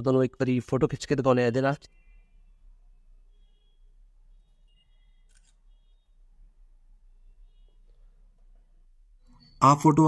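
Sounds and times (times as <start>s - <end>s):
camera shutter click: 5.2s - 5.6s.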